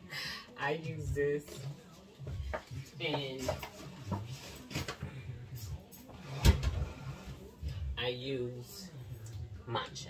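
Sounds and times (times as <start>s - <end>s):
kitchen handling noises: 2.5s - 7.3s.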